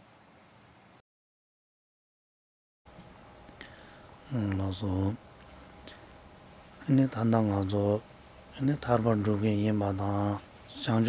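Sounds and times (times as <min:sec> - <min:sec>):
man reciting in monotone: 0:04.3 - 0:05.2, 0:06.8 - 0:11.0.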